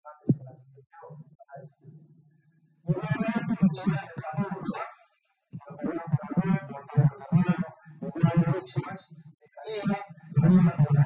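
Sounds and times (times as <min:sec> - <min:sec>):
man speaking into a microphone: 0:00.0 - 0:01.9, 0:02.9 - 0:04.9, 0:05.6 - 0:11.0.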